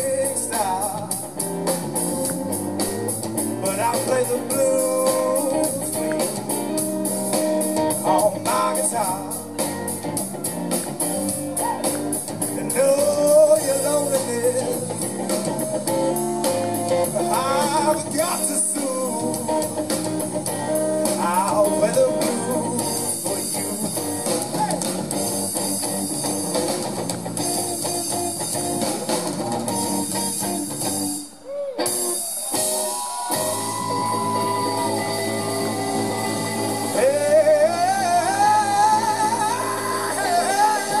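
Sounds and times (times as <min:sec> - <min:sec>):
drum kit: 0:00.0 - 0:41.0
electric blues guitar solo: 0:00.0 - 0:41.0.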